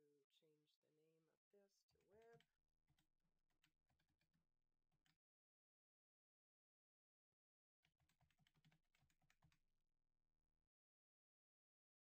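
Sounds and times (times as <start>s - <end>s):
faint keyboard typing: 1.9s - 4.4s, 7.8s - 9.7s.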